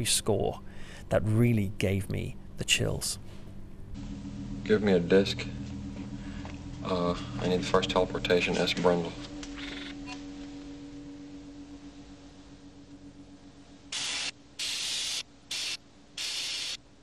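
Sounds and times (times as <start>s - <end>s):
low held tone: 0.0s - 14.6s
bursts of static hiss: 13.9s - 16.8s.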